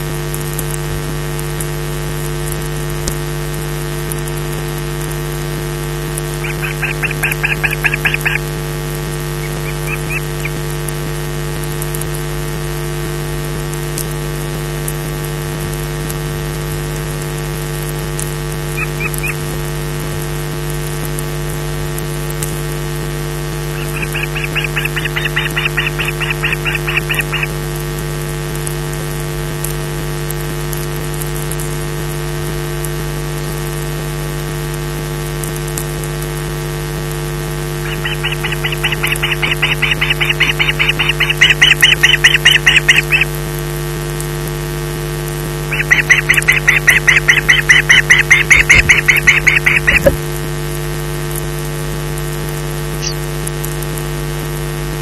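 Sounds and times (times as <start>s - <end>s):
electrical hum: 0.0s - 32.5s, 35.0s - 55.0s
osprey high calls: 6.3s - 8.6s, 9.4s - 10.6s, 18.8s - 19.5s, 23.7s - 27.6s, 37.8s - 43.3s, 45.7s - 50.2s, 53.0s - 53.2s.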